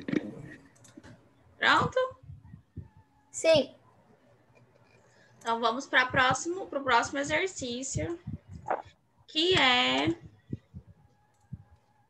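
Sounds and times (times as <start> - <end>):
computer mouse clicks: 0.1 - 1.2, 11.3 - 11.6.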